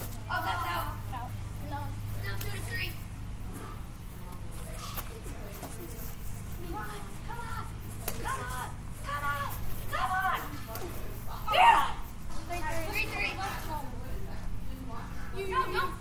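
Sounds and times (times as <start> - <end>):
children calling out: 6.7 - 10.5, 11.4 - 12.1
child yelling: 11.5 - 12.0.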